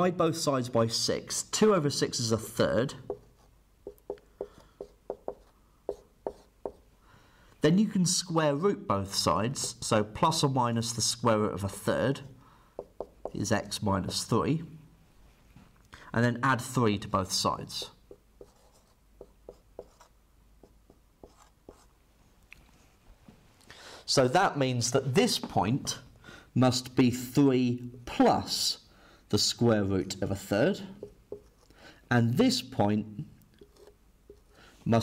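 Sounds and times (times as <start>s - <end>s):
marker writing on whiteboard: 2.4s - 6.9s, 9.1s - 10.1s, 11.6s - 12.0s, 12.8s - 14.3s, 17.6s - 21.9s, 30.9s - 31.8s, 33.6s - 34.6s.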